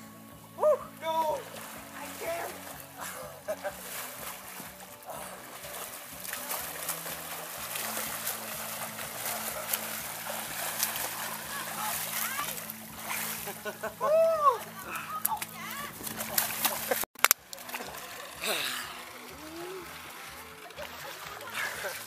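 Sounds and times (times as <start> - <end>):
background music: 0.0 - 22.0
water splashing: 0.0 - 22.0.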